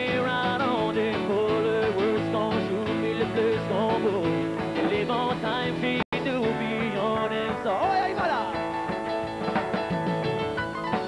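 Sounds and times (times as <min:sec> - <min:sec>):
man singing: 0:00.0 - 0:09.0
acoustic guitar strumming: 0:00.0 - 0:11.0.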